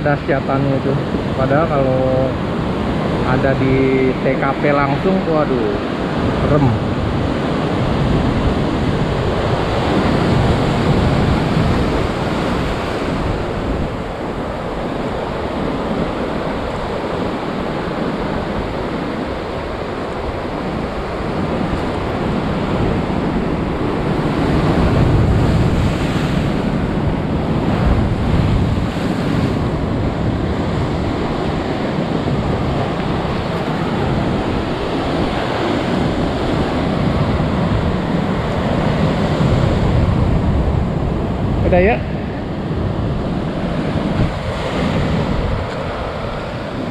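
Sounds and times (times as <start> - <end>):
heavy surf on rocky shore: 0.0 - 46.9.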